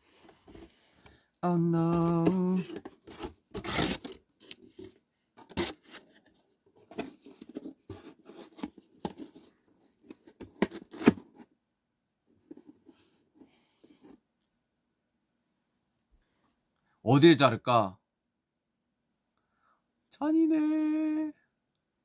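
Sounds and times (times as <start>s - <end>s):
packaging rustling and tearing: 2.0s - 6.3s.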